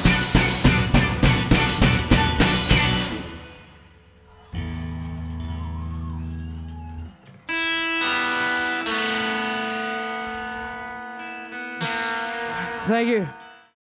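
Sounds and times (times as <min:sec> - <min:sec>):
electric guitar sustained notes: 0:04.5 - 0:13.8.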